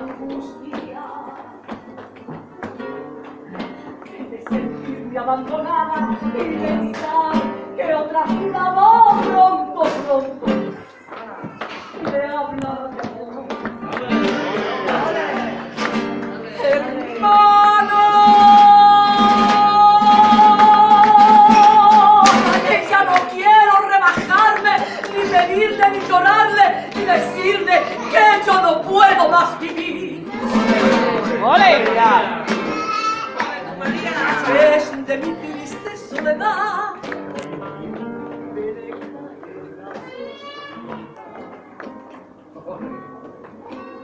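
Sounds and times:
woman singing: 0.0 - 3.0, 3.6 - 15.5, 16.2 - 32.3, 34.3 - 37.2
guitar strumming: 13.5 - 44.0.

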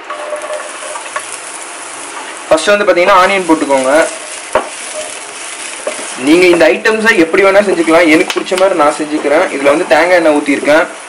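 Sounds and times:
onions sizzling in oil: 0.0 - 11.0
wooden spatula stirring: 0.0 - 11.0.

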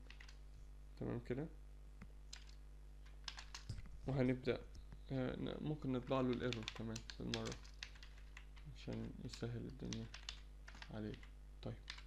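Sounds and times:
computer keyboard keystrokes: 0.0 - 0.4, 2.3 - 3.9, 6.3 - 12.0.

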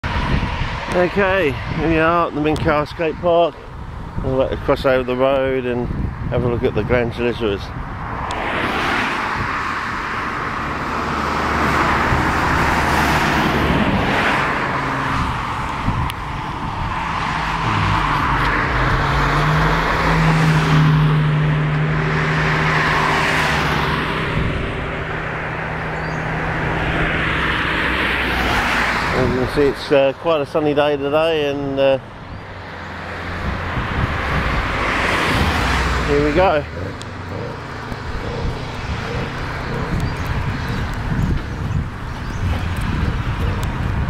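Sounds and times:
cars passing: 0.0 - 44.0
engine hum rising in pitch: 10.1 - 29.0, 33.1 - 44.0.

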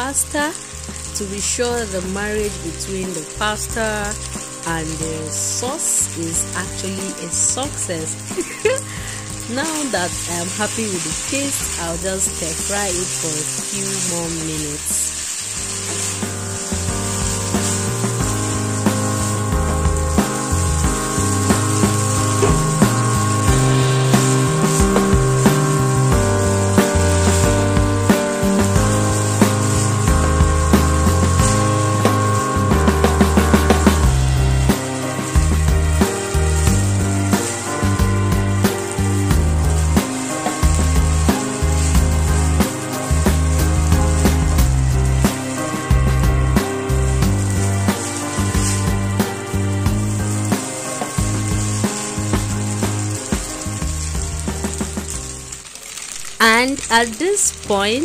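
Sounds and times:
food sizzling in a pan: 0.0 - 58.0
background music with steady beat: 15.6 - 55.4.

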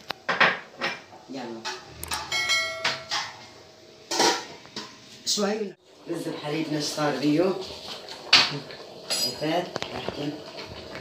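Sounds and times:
metal pot lid ringing: 2.1 - 3.4.

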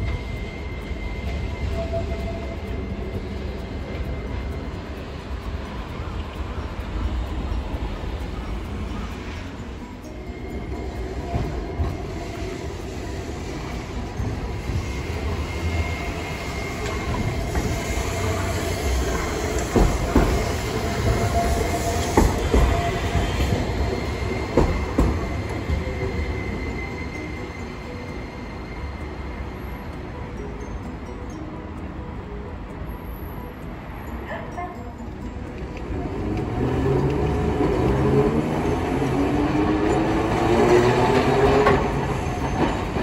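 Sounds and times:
tram passing: 0.0 - 43.0
tram wheels clacking on track: 0.0 - 43.0.

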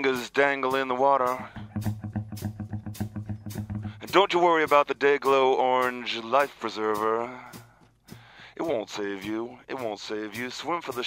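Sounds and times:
instrumental music with bass pulse: 0.7 - 4.9.

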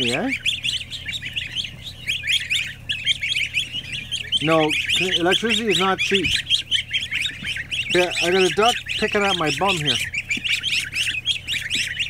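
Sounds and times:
exhaust fan humming: 0.0 - 12.0
goslings and ducklings peeping: 0.0 - 12.0.

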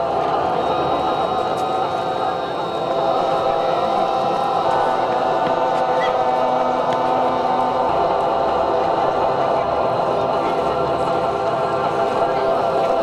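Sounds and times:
choir singing long notes: 0.0 - 13.0.

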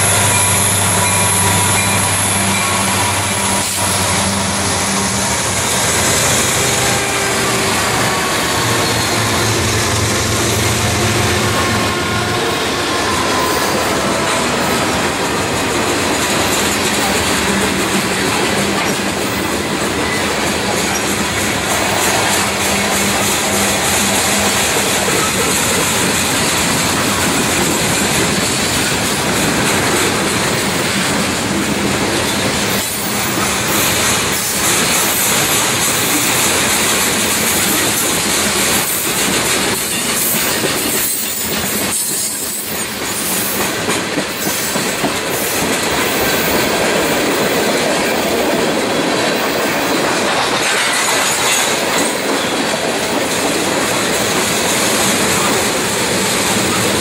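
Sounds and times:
steel wheels rumbling on rails: 0.0 - 57.0
wheels clacking over rail joints: 0.0 - 57.0.

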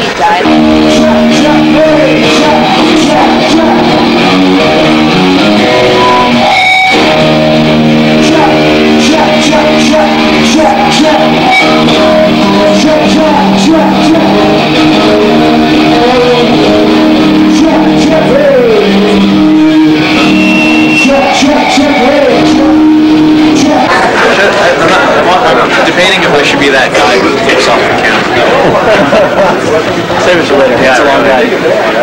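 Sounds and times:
person singing: 0.0 - 24.2
distorted electric guitar chord: 0.0 - 25.2
loud rock music: 0.0 - 30.2
thin steady high tone: 19.6 - 23.4.

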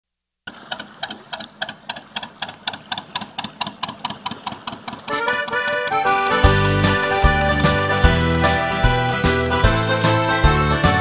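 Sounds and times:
steady ticking: 0.7 - 9.0.

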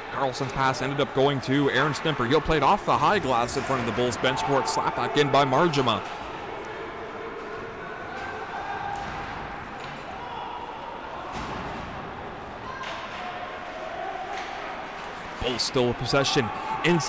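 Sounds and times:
hum of arena voices: 0.0 - 17.0.

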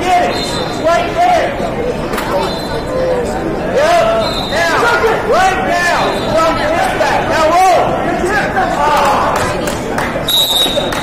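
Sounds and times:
crowd chatter: 0.0 - 11.0
people shouting encouragement: 3.7 - 9.6.

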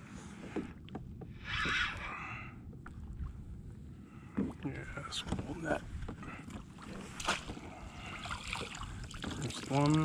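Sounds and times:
water splashing: 6.8 - 10.0.

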